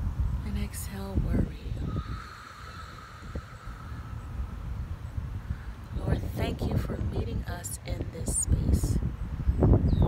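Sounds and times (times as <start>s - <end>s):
low wind rumble on microphone: 0.0s - 10.0s.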